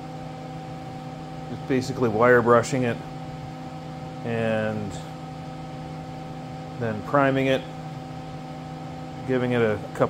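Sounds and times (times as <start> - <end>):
fan or machine hum: 0.0 - 10.0.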